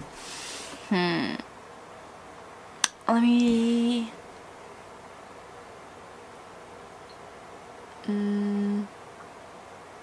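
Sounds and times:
woman humming hmm: 0:08.0 - 0:08.9.

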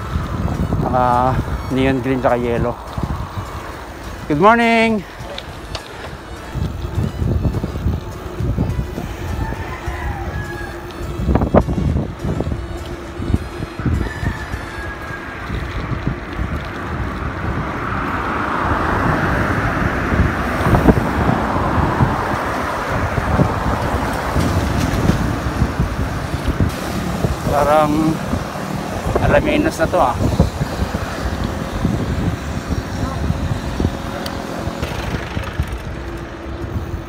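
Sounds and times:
wind buffeting microphone: 0:00.0 - 0:37.0
vehicle rushing past: 0:13.2 - 0:36.5.

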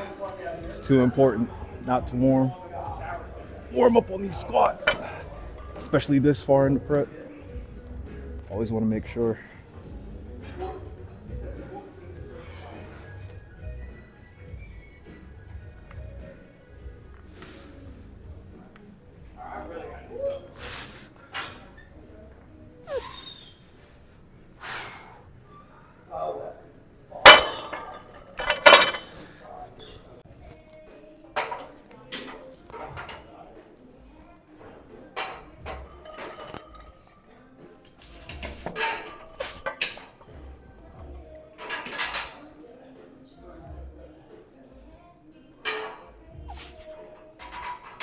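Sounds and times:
weight plates clanking: 0:27.2 - 0:29.2.

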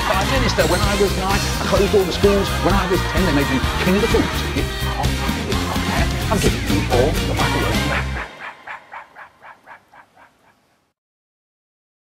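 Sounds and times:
stuttering echoing vocal syllable: 0:00.0 - 0:10.0.

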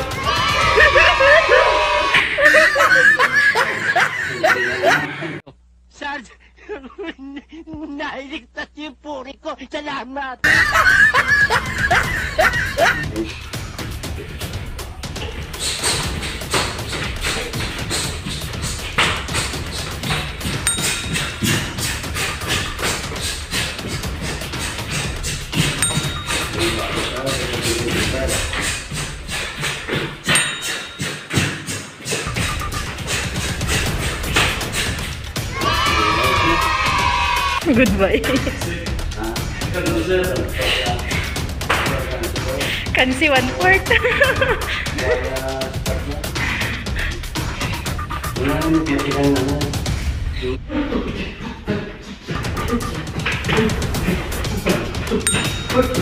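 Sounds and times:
people laughing: 0:00.0 - 0:05.4, 0:06.6 - 0:08.5, 0:10.4 - 0:13.8, 0:22.2 - 0:28.8, 0:32.2 - 0:49.5, 0:50.4 - 0:56.0
background music with steady beat: 0:00.0 - 0:05.5, 0:10.4 - 0:56.0
voices: 0:25.8 - 0:29.0.

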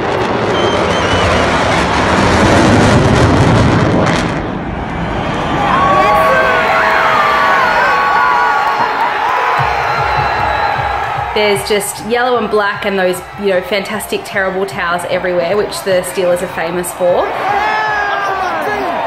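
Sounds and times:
stadium crowd cheering: 0:00.0 - 0:02.2, 0:04.1 - 0:19.0
military jets roaring overhead: 0:00.0 - 0:09.9
fans yelling: 0:05.0 - 0:19.0.

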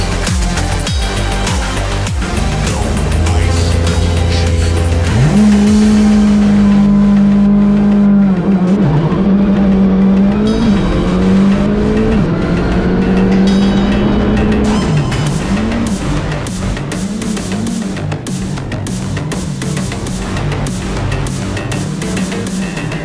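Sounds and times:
car engine at high revs: 0:00.0 - 0:23.0
music: 0:00.0 - 0:23.0.

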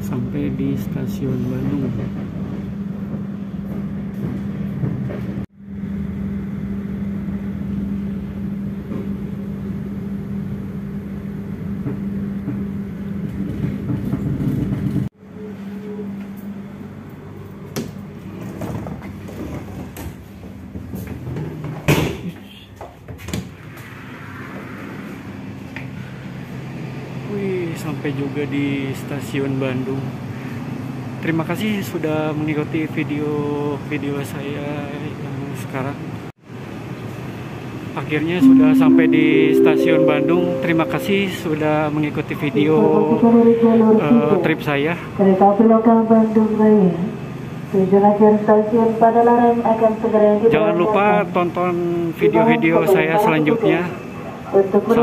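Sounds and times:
train rumbling: 0:00.0 - 0:21.9.

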